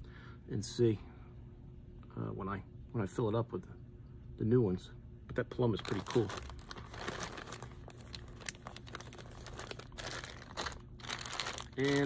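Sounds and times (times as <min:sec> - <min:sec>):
low steady hum: 0:00.0 - 0:12.0
plastic bag crinkling: 0:05.7 - 0:12.0.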